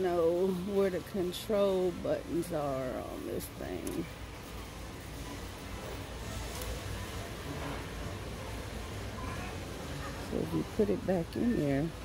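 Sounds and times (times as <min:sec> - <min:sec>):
store ambience hum and hiss: 0:00.0 - 0:12.0.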